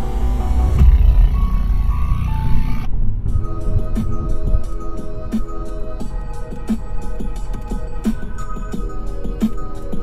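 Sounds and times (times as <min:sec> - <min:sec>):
electronic music on car stereo: 0:00.0 - 0:10.0
highway road noise rumble: 0:00.0 - 0:10.0.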